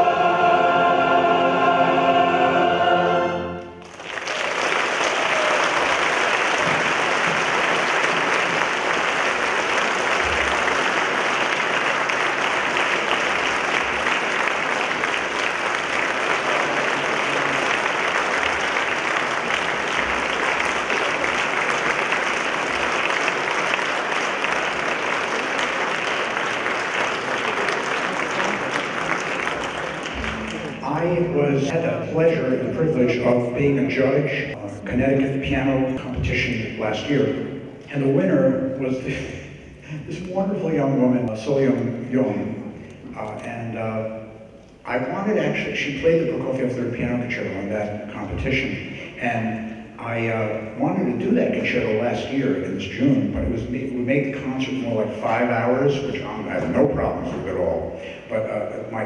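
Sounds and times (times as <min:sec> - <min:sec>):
choir and orchestra chord: 0:00.0 - 0:03.9
audience applause: 0:03.8 - 0:31.7.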